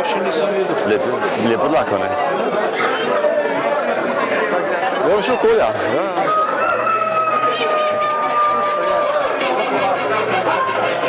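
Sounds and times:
people chattering: 0.0s - 11.0s
rooster crowing: 6.2s - 9.4s.

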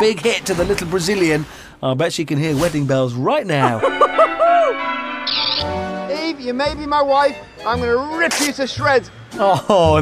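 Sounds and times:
church bells ringing: 3.8s - 6.6s
high bird-like chirp: 5.2s - 5.8s.

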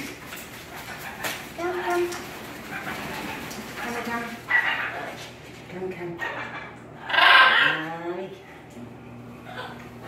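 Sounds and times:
macaws grunting calls: 6.2s - 7.9s
macaw harsh squawk: 6.3s - 7.8s.

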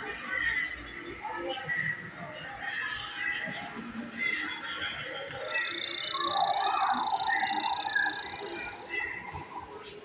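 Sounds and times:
toy ray gun warbling tone: 5.3s - 9.2s
high whine: 5.3s - 9.8s.

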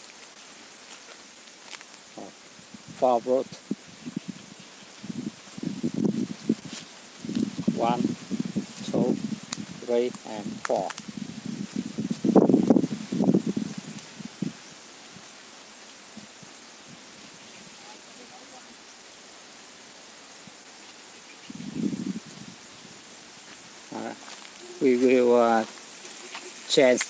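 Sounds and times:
steady faint hiss: 0.0s - 27.0s
voice bursts: 23.9s - 25.7s.

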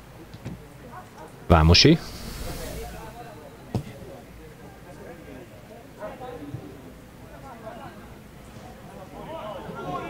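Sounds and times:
distant voices outdoors: 1.5s - 4.4s.

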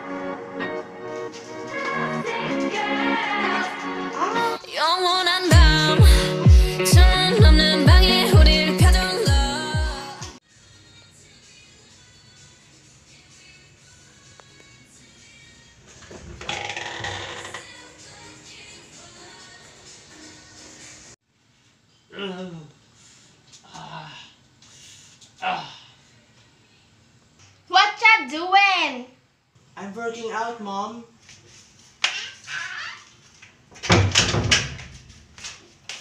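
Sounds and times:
faint background music: 8.5s - 21.2s.

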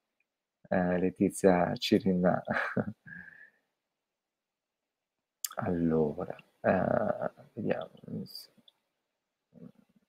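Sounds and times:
man murmuring: 1.5s - 3.3s, 6.7s - 8.4s.

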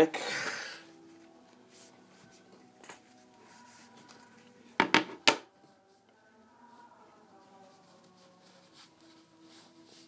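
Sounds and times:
sharp knocks on tabletop: 4.8s - 5.4s.

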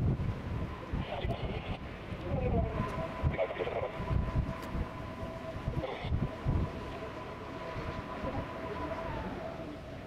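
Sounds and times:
aircraft turbine engines whining: 0.0s - 10.0s
wind buffeting microphone: 0.0s - 10.0s.

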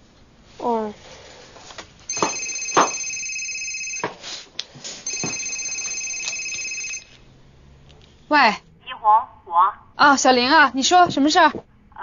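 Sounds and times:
telephone ringing: 2.1s - 4.3s, 5.0s - 7.2s.

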